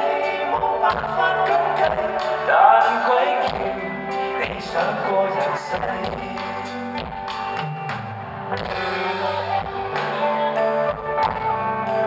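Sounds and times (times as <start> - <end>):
electric guitar: 0.0 - 12.0
drum and cymbal hits: 5.7 - 11.6.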